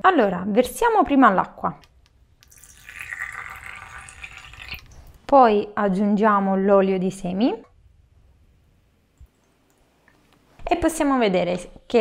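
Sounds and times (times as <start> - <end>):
water pouring into a glass: 2.4 - 5.2.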